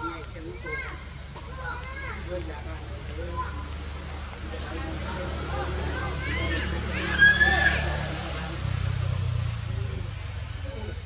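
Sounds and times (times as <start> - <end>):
macaque squealing: 6.4 - 8.1.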